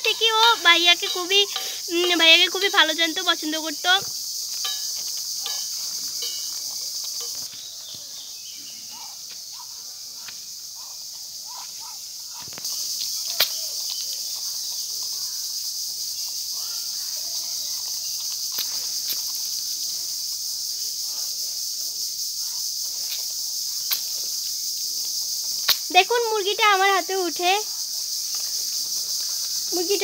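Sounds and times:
insects droning: 0:00.0 - 0:30.0.

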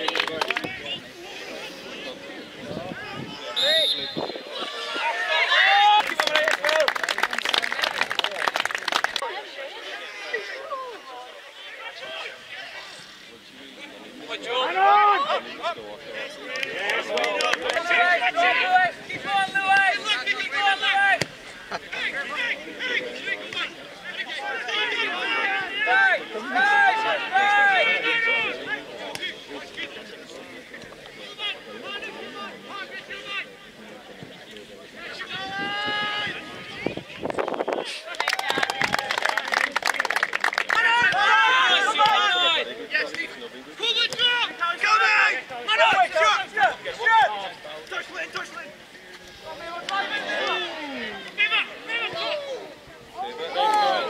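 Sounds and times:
people shouting outdoors: 0:02.7 - 0:06.9, 0:14.3 - 0:15.8, 0:16.7 - 0:21.2, 0:22.0 - 0:29.0, 0:35.0 - 0:37.0, 0:40.7 - 0:43.0, 0:43.7 - 0:54.0
people shouting: 0:40.8 - 0:42.6, 0:49.6 - 0:54.0.

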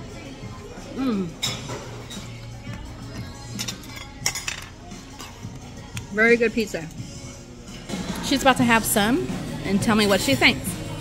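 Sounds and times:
background music: 0:00.0 - 0:11.0
cutlery and dishes clinking: 0:01.3 - 0:02.8, 0:03.4 - 0:05.6.

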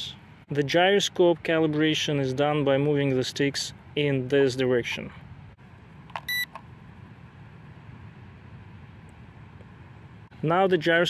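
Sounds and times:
short electronic beep: 0:06.3 - 0:06.5.

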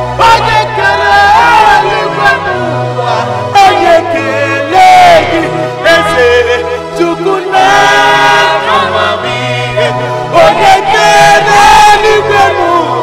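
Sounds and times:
instrumental backing with bass: 0:00.0 - 0:13.0
voices singing gospel song: 0:00.0 - 0:13.0.

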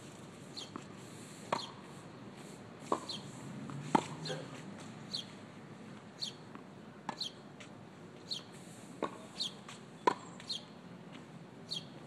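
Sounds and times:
tennis ball knocks: 0:03.7 - 0:04.5.

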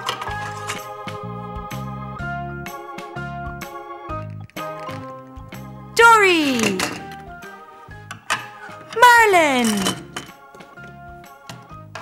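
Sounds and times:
light background music: 0:00.0 - 0:12.0
person crying out: 0:06.0 - 0:07.0, 0:09.0 - 0:09.9.

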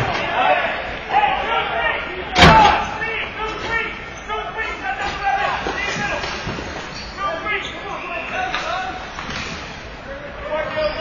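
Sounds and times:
players' voices: 0:00.0 - 0:11.0
loud impact bang with echo: 0:02.4 - 0:02.9.

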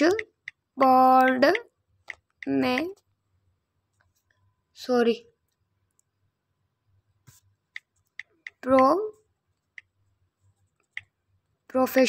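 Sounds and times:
smartphone keyboard typing clicks: 0:00.0 - 0:03.0.

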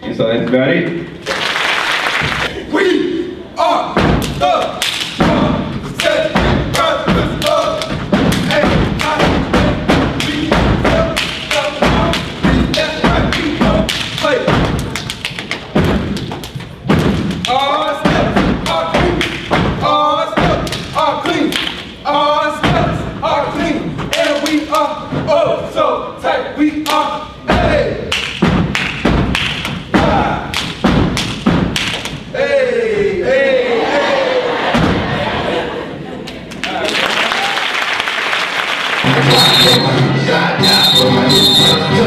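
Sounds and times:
voices chanting: 0:02.5 - 0:14.8, 0:32.3 - 0:36.1, 0:39.0 - 0:42.0
rhythmic foot stomps: 0:03.9 - 0:25.6, 0:26.8 - 0:32.4, 0:34.7 - 0:35.2
hand claps and body slaps: 0:04.2 - 0:05.2, 0:06.0 - 0:09.4, 0:10.0 - 0:17.9, 0:20.5 - 0:21.9, 0:28.1 - 0:29.9, 0:30.5 - 0:32.2.

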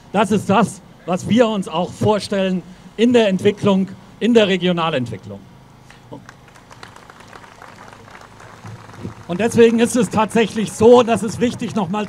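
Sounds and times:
crowd clapping: 0:06.2 - 0:12.0.

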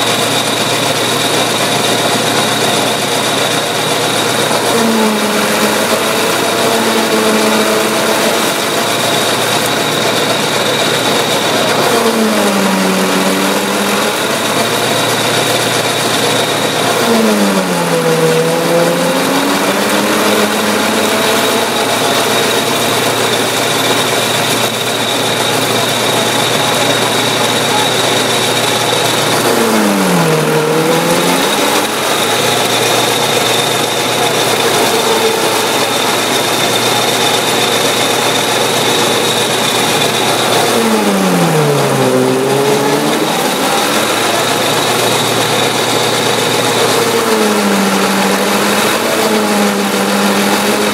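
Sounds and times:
cutter head high whine: 0:00.0 - 0:50.9
tractor engine drone: 0:00.0 - 0:50.9.

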